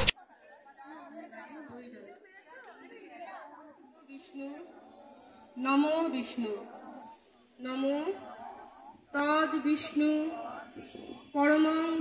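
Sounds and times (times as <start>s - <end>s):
faint background voices: 0.1s - 12.0s.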